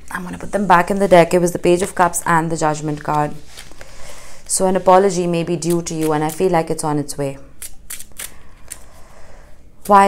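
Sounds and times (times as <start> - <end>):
person speaking: 0.0 - 3.6, 4.5 - 7.6
cards sliding rustle: 2.9 - 4.2.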